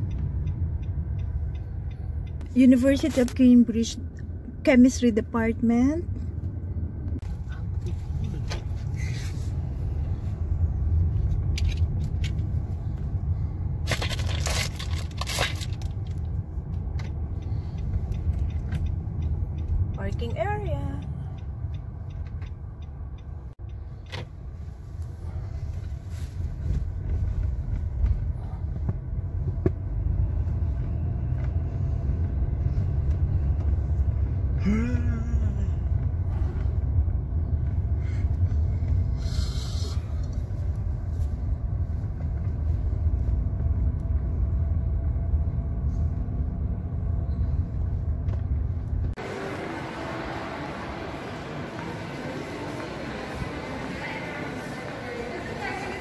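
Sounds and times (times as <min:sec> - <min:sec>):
faint regular ticking: 0:00.0 - 0:05.1, 0:16.0 - 0:24.7
car engine and tyre rumble: 0:00.0 - 0:56.0.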